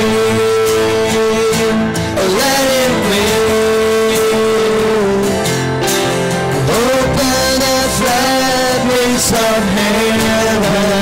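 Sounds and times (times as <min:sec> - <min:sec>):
man singing a long note: 0:00.0 - 0:05.5, 0:06.6 - 0:11.0
guitar accompaniment: 0:00.0 - 0:11.0.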